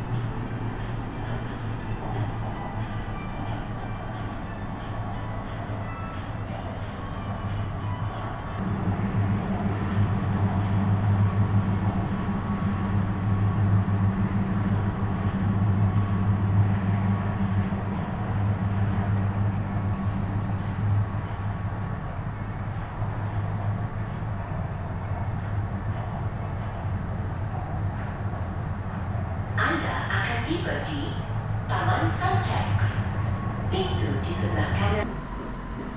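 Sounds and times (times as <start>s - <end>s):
train interior running hum: 0.0s - 35.9s.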